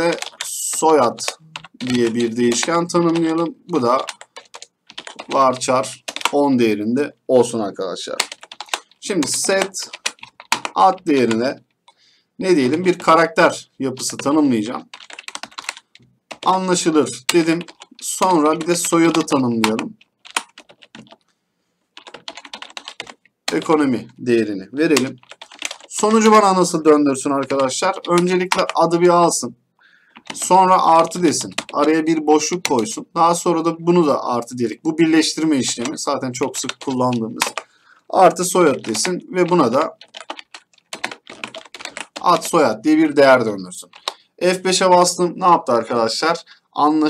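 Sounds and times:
typing on computer keyboard: 0.0s - 6.4s, 8.1s - 12.0s, 13.9s - 21.3s, 22.0s - 24.2s, 24.8s - 26.8s, 27.4s - 29.0s, 30.1s - 33.1s, 35.0s - 42.8s, 43.8s - 44.3s.

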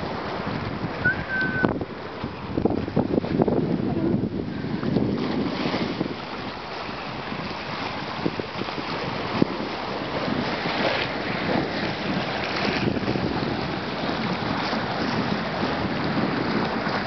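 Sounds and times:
small waves splashing on rocks: 0.0s - 17.0s
wind buffeting microphone: 0.0s - 17.0s.

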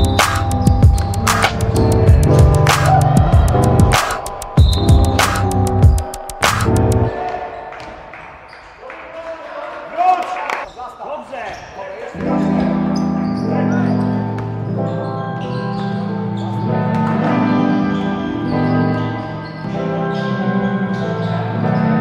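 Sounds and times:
players' voices: 1.1s - 20.0s.

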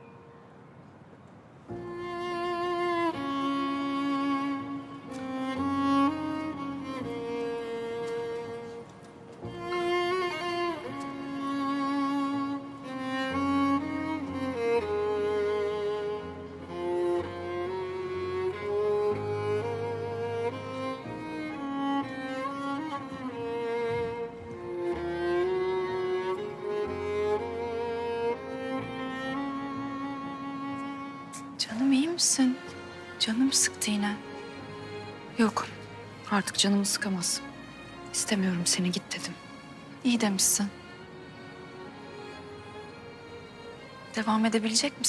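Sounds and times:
sombre bowed string music: 0.0s - 45.0s
cello sustained notes: 1.7s - 45.0s.

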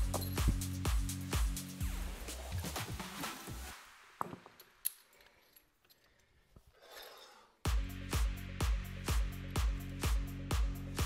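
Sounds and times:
electronic music with heavy beat: 0.0s - 4.2s, 7.7s - 11.0s.

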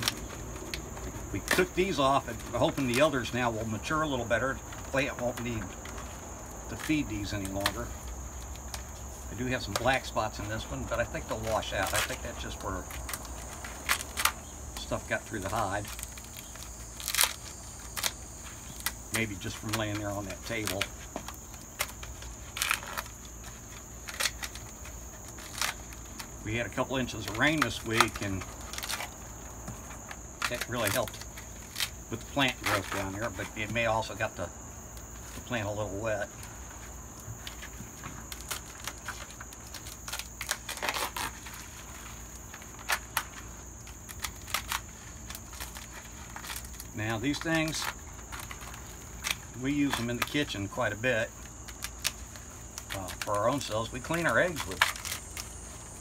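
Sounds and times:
dry gourd skin crackling: 0.0s - 56.0s.

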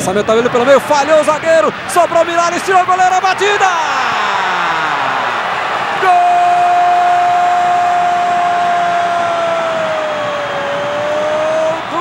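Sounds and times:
crowd noise: 0.0s - 12.0s
commentator's long goal shout: 0.4s - 5.4s, 6.0s - 12.0s.

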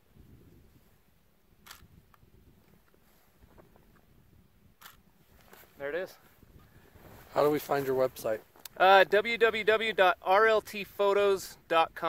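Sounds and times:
camera shutter click: 1.6s - 2.0s, 4.8s - 5.0s.

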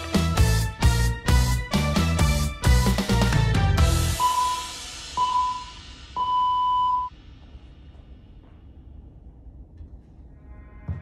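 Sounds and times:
interval timer beeping: 4.2s - 7.1s.

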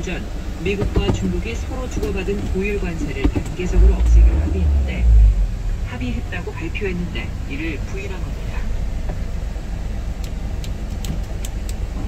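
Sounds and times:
diesel truck engine idling: 0.0s - 12.0s
light clicks: 10.2s - 11.8s.

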